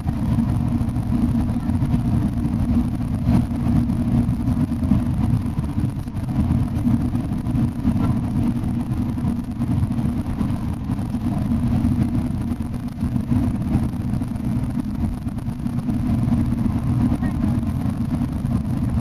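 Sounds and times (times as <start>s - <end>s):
coach engine and road rumble: 0.0s - 19.0s.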